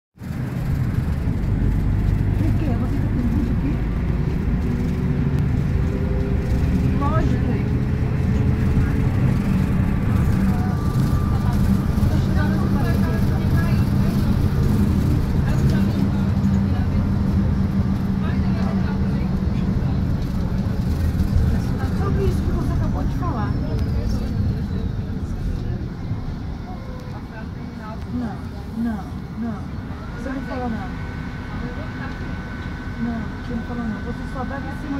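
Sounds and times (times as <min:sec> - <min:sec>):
road noise: 0:00.1 - 0:34.9
bus engine rumble: 0:00.2 - 0:34.9
faint passengers' voices: 0:00.4 - 0:34.9.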